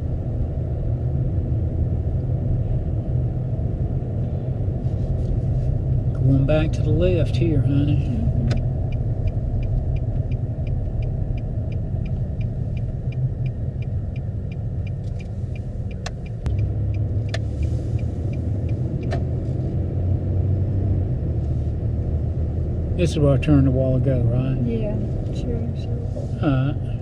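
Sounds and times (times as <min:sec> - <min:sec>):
car engine and road rumble: 0:00.0 - 0:27.0
turn signal ticking: 0:05.2 - 0:27.0.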